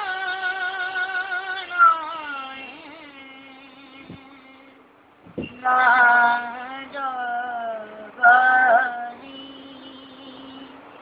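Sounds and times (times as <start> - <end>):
boy singing long note: 0.0 - 4.8, 5.5 - 10.8.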